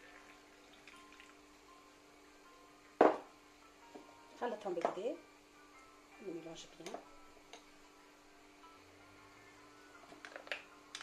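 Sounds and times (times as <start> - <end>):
water trickling into a glass: 0.0 - 1.5
quiet background music: 0.0 - 11.0.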